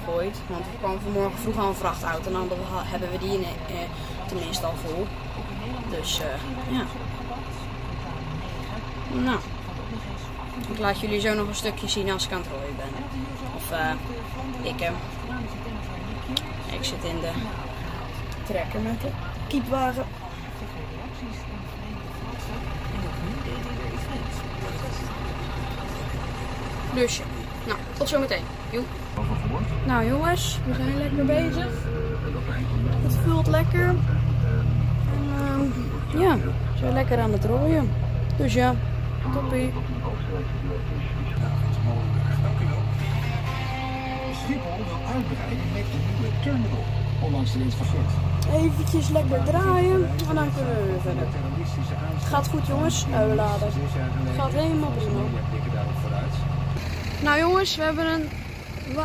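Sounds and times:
voices on radio: 0:00.0 - 0:56.6
tractor engine droning: 0:00.0 - 0:59.0
radio music: 0:39.6 - 0:47.0.

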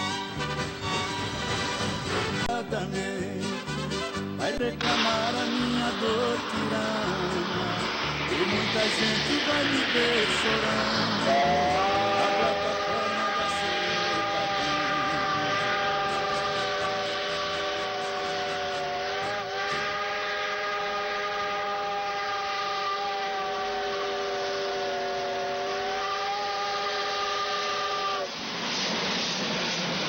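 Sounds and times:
steam locomotive chime whistle: 0:00.0 - 0:02.4, 0:03.4 - 0:28.4.

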